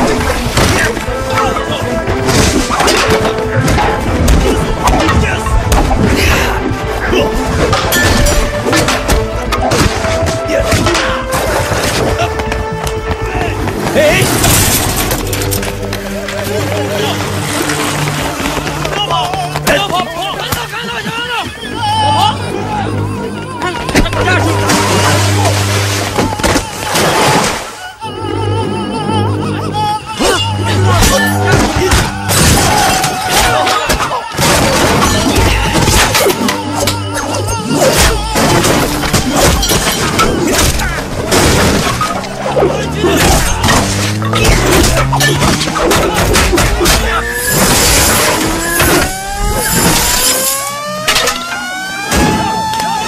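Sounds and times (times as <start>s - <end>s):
action film music: 0.0s - 53.0s
voices shouting: 0.0s - 53.0s.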